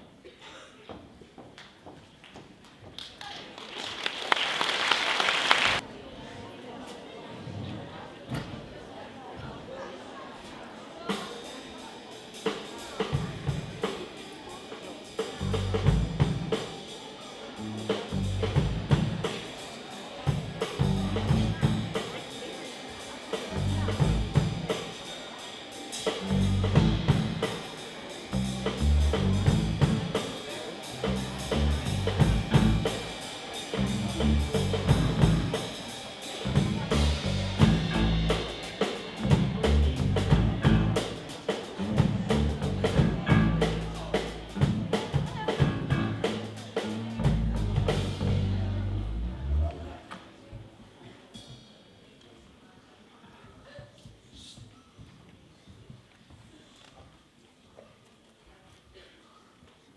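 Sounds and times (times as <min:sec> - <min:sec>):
drum kit beat: 0:11.1 - 0:49.3
bass notes: 0:15.3 - 0:16.6, 0:17.5 - 0:19.3, 0:20.4 - 0:22.1, 0:23.5 - 0:24.8, 0:26.0 - 0:27.6, 0:28.2 - 0:50.0.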